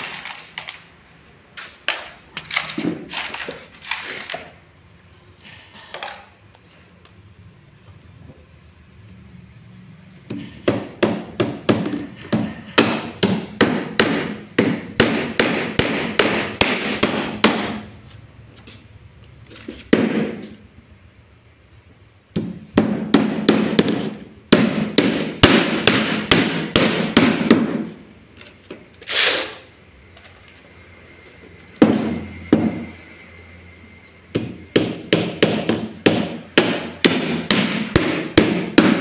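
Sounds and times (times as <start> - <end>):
hammer nailing wooden boards: 10.3 - 17.8, 19.9 - 20.4, 22.3 - 27.9, 34.3 - 39.0.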